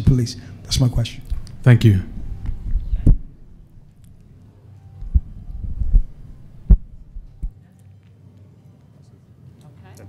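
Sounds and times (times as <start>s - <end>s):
low rumble: 1.3s - 4.4s, 5.0s - 7.6s
microphone handling thumps: 2.1s - 3.5s, 5.0s - 7.6s.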